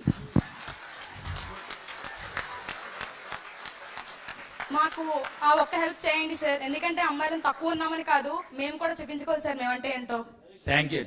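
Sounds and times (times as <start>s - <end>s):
hand clapping: 0.0s - 6.0s.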